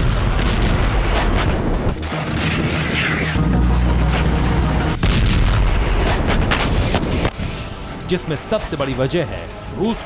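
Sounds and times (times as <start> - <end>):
artillery blast rushing: 0.0 - 3.8, 4.4 - 7.5
low music drone: 0.0 - 10.0.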